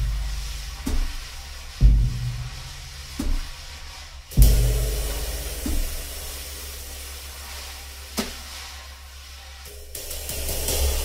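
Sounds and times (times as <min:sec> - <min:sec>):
drum hits: 0:00.0 - 0:03.8, 0:04.4 - 0:06.5
bass drum stroke: 0:00.0 - 0:11.0
cymbal crash: 0:04.4 - 0:08.1, 0:09.7 - 0:11.0.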